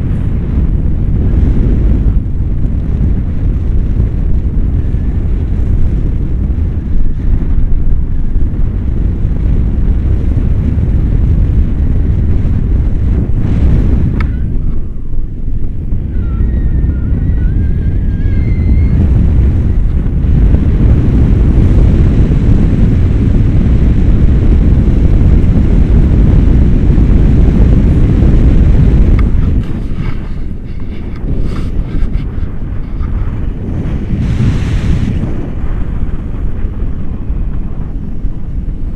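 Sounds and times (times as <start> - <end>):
wind buffeting microphone: 0.0 - 38.9.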